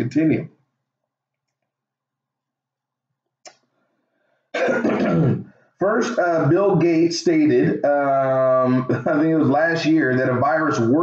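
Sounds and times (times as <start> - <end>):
man speaking: 0.0 - 0.5, 4.6 - 11.0
man clearing his throat: 4.6 - 5.5, 7.9 - 9.3.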